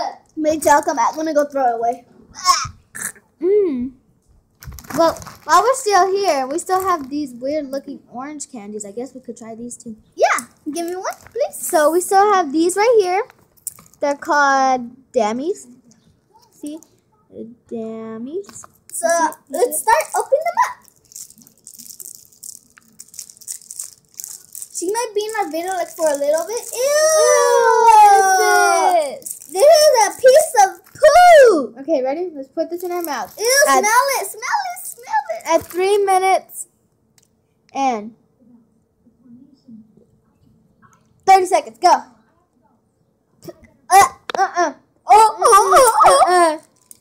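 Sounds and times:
candy wrappers crinkling: 4.6 - 7.8, 10.5 - 12.2, 13.1 - 14.1, 18.5 - 31.2, 32.7 - 36.3, 45.6 - 47.0.

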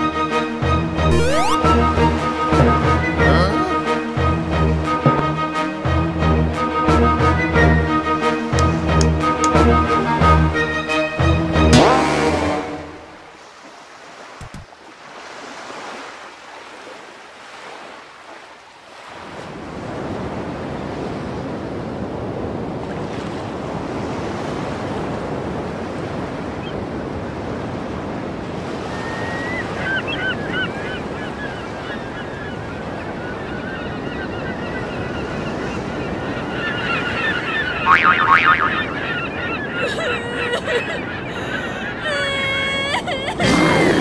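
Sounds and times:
birds calling: 29.0 - 43.9.

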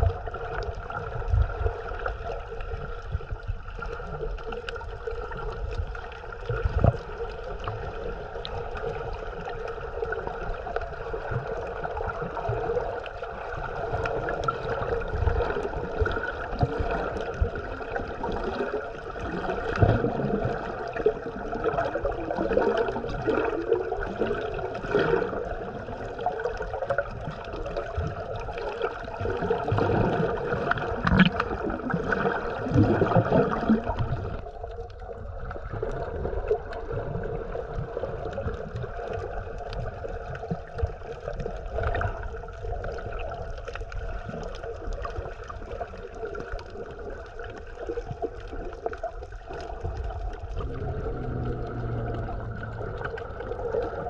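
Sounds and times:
water gurgling and churning: 0.0 - 54.0
steady hum: 50.6 - 53.8.

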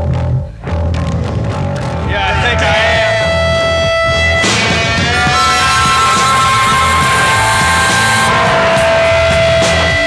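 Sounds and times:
drums: 0.0 - 10.0
electric guitar sustained notes: 1.8 - 10.0.

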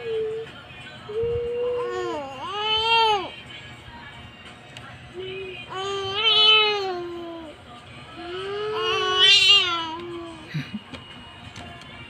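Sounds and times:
baby crying: 5.7 - 7.5, 8.2 - 10.4.

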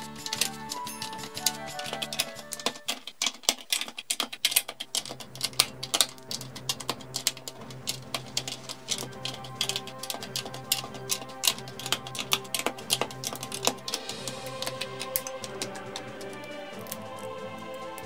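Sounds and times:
background music: 0.0 - 3.0, 4.9 - 18.0
plastic bricks clicking: 0.0 - 17.1.

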